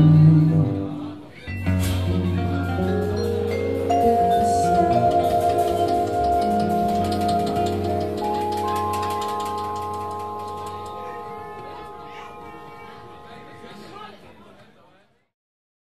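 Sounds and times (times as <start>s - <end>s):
vibraphone notes: 1.5s - 14.1s.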